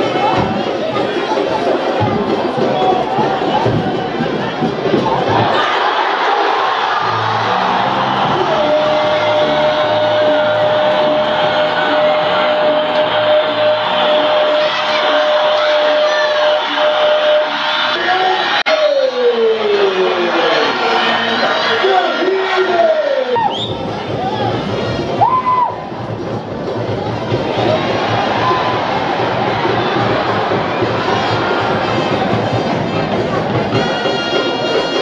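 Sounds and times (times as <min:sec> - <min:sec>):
music: 0:00.0 - 0:35.0
stadium crowd cheering: 0:00.0 - 0:35.0
commentator shouting: 0:06.6 - 0:23.6.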